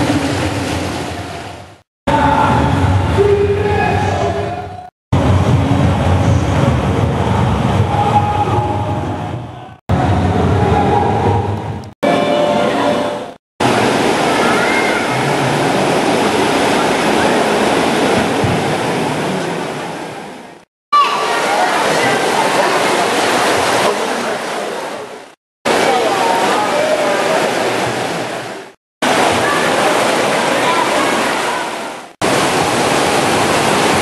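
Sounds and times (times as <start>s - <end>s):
stream water rushing over stones: 13.6s - 34.0s.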